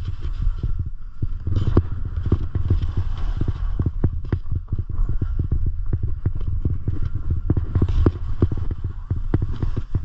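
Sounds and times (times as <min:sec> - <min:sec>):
skis scraping over snow: 0:00.0 - 0:10.0.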